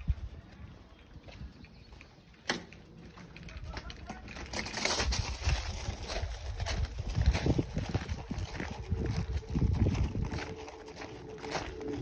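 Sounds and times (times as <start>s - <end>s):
wind on microphone: 0.0s - 1.6s, 4.9s - 12.0s
footsteps on gravel: 1.2s - 12.0s.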